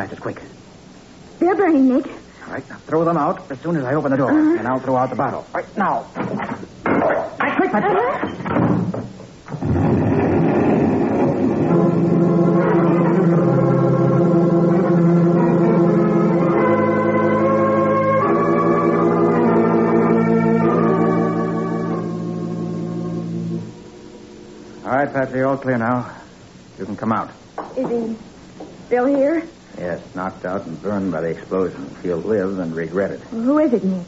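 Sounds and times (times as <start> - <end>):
organ playing sustained chords: 9.6 - 26.1.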